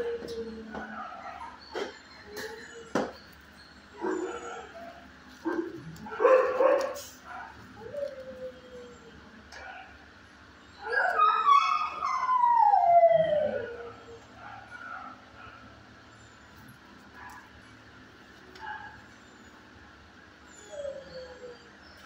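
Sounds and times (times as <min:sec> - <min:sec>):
dog howling and whining: 0:00.0 - 0:10.0, 0:10.6 - 0:15.6, 0:20.4 - 0:22.0.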